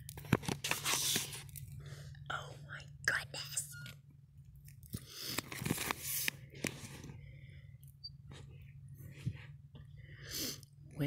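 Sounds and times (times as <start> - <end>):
packaging crinkling and rustling: 0.0 - 1.8, 4.6 - 7.1.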